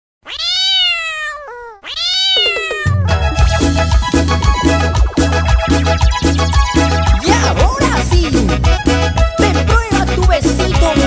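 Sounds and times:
cat meowing: 0.2 - 3.2
band music with bass and percussion: 2.7 - 11.0.

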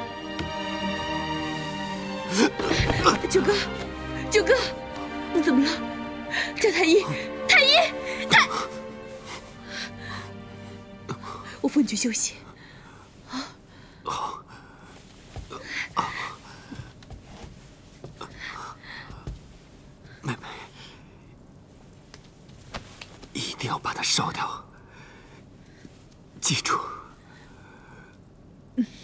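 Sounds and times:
man whispering: 26.4 - 27.2.

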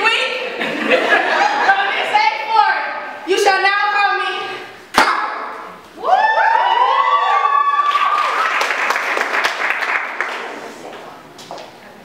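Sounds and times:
cheering and applause: 6.0 - 10.5.

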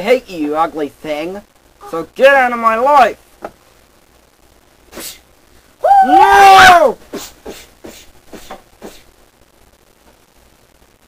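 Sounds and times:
person crying out oh: 1.8 - 2.1, 5.8 - 7.0.

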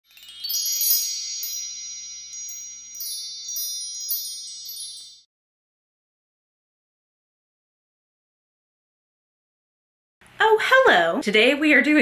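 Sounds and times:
sparkly chime: 0.0 - 5.3.

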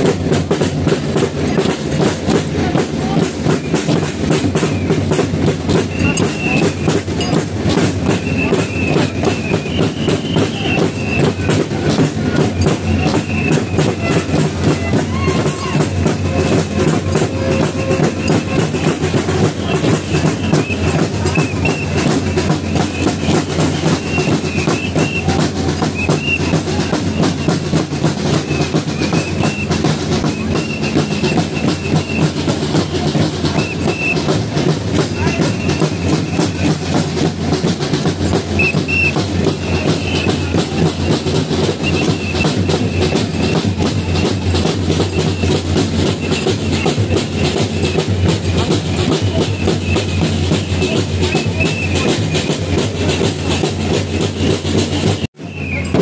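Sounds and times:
drums beating steady rhythm: 0.0 - 56.0.

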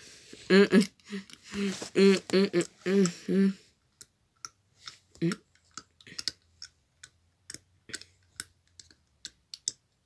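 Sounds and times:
person humming: 0.4 - 3.7, 5.2 - 5.4.

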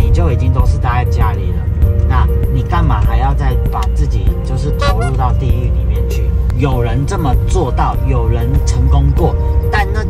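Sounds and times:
background music: 2.4 - 8.7
man talking: 4.8 - 5.2.

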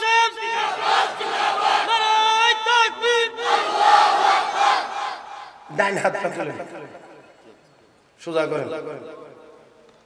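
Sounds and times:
men chanting over loudspeaker: 0.0 - 5.8.

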